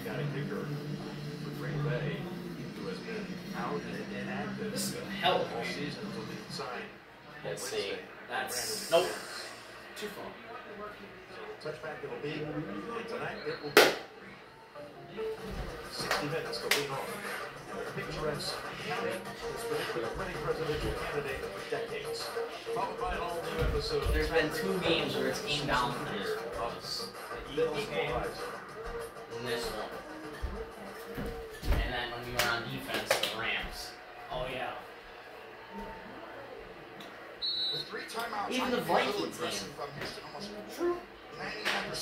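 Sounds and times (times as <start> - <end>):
television sports broadcast: 0.0 - 42.0
sharp slaps or knocks: 13.8 - 14.0
sharp hand claps: 13.8 - 14.1, 16.0 - 17.0, 32.3 - 33.4
voices talking: 35.8 - 42.0.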